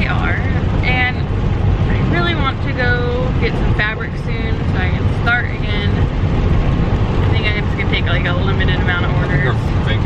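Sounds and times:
woman talking: 0.0s - 1.3s, 1.9s - 6.1s, 7.2s - 10.0s
road and engine rumble: 0.0s - 10.0s.

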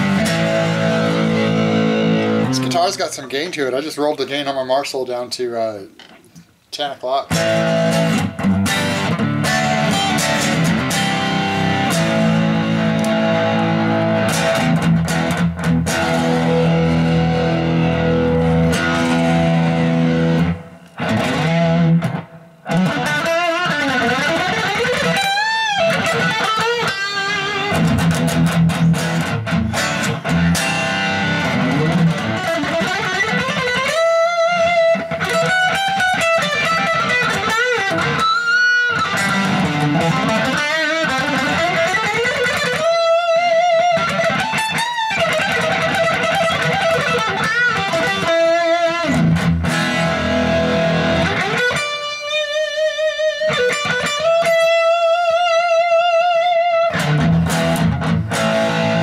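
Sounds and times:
electric guitar lead with bends: 0.0s - 3.0s, 7.3s - 59.0s
electric guitar chords: 0.0s - 3.3s, 7.3s - 59.0s.

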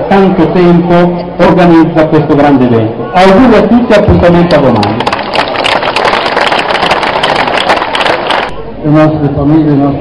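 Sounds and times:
crowd applauding: 4.4s - 8.6s.

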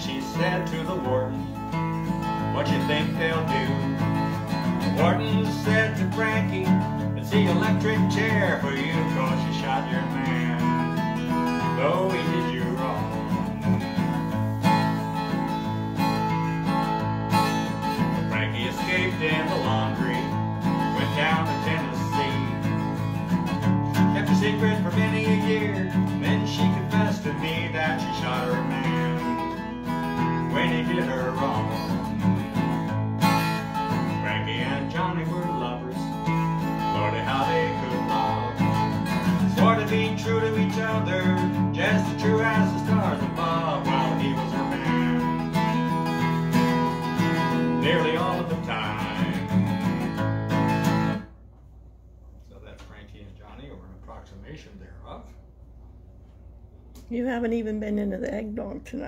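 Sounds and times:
acoustic guitar strummed and picked: 0.0s - 51.4s.

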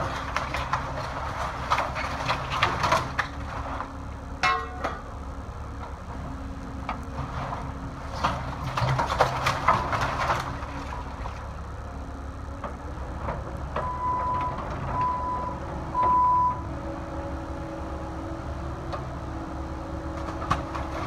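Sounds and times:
excavator diesel engine running: 0.0s - 21.0s
machine alarm beeps: 13.8s - 16.6s.

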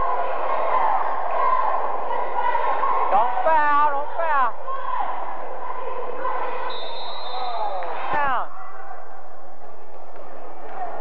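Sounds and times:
crowd chatter: 0.0s - 11.0s
high whistle: 6.7s - 7.9s.

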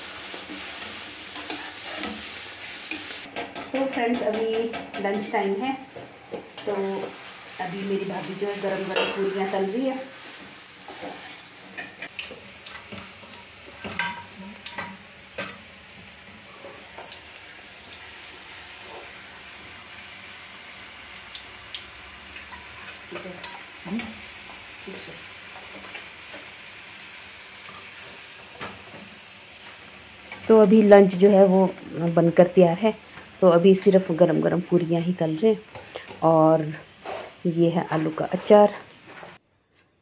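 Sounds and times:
dough frying in hot oil: 0.0s - 39.4s
utensil knocking against pan: 3.3s - 5.3s.

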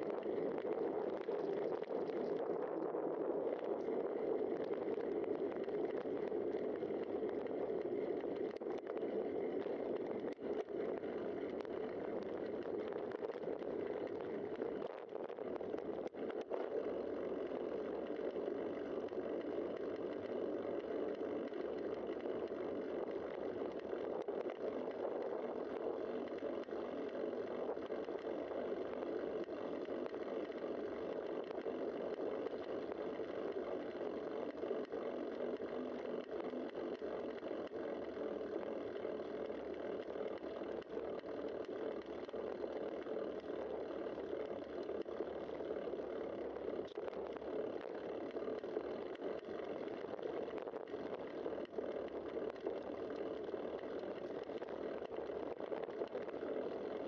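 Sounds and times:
bicycle tyre noise on road: 0.0s - 57.0s.

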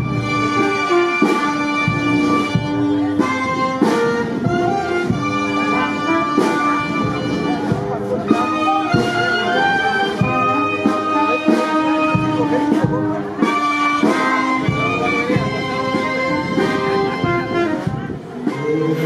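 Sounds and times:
brass ensemble playing sustained notes: 0.0s - 19.0s.

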